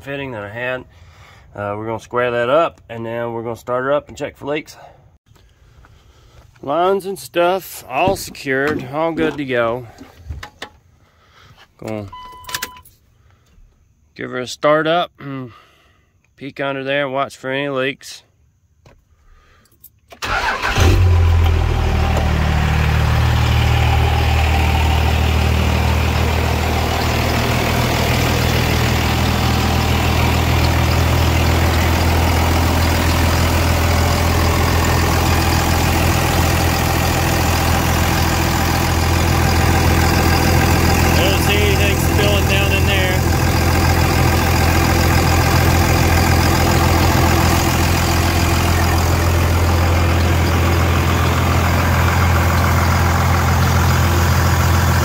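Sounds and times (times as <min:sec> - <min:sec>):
diesel engine cranking and idling: 0:05.3 - 0:12.7, 0:20.1 - 0:55.0.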